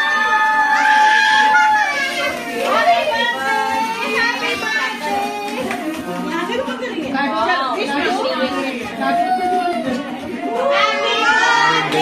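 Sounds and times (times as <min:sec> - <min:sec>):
children calling out: 0:00.0 - 0:06.1.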